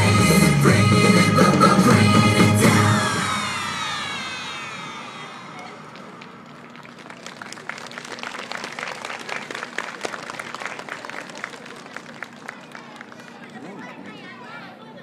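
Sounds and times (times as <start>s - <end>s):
audience clapping: 5.6s - 14.1s.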